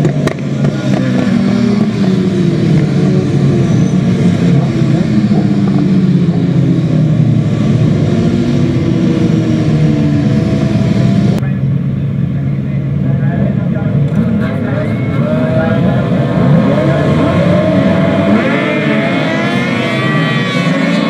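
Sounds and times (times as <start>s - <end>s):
racing motorcycles passing: 0.0s - 11.4s, 13.4s - 21.0s
motorcycle engines idling: 0.0s - 21.0s.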